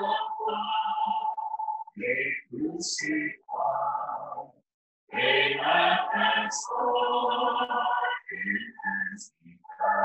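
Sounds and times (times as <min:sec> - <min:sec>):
person singing a hymn: 0:00.0 - 0:04.5, 0:05.2 - 0:10.0.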